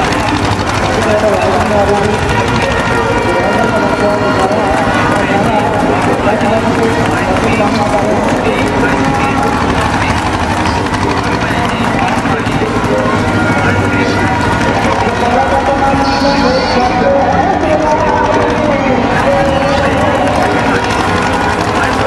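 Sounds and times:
man speaking over loudspeakers: 0.0 - 22.0.

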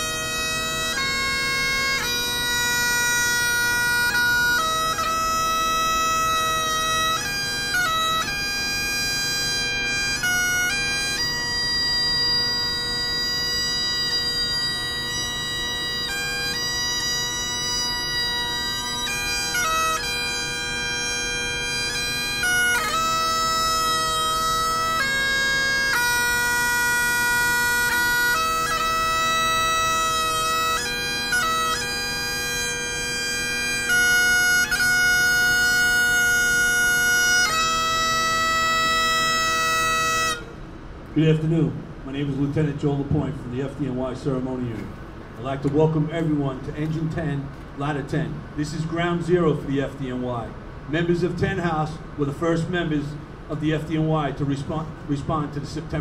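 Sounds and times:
bagpipe playing slow tune: 0.0 - 42.1.

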